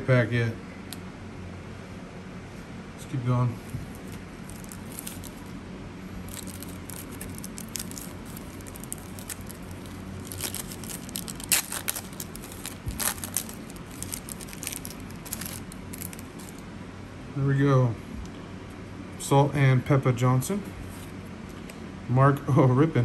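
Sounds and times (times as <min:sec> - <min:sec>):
paper wrapper tearing and crumpling: 0:03.9 - 0:05.5, 0:06.3 - 0:16.6.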